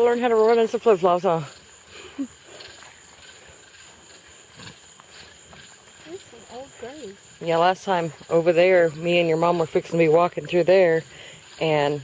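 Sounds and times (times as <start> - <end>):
crickets trilling: 0.0 - 12.0
woman chuckling: 2.0 - 2.5.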